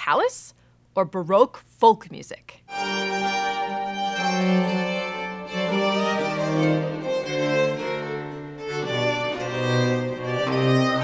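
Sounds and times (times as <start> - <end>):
bowed string bass line: 2.7 - 11.0
violin: 2.7 - 11.0.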